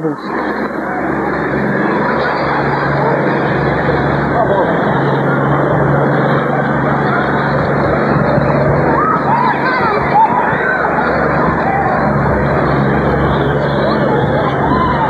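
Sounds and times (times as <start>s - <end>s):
continuous rush of noise: 0.0s - 15.0s
truck engine hum: 0.0s - 15.0s
people shouting: 0.8s - 15.0s.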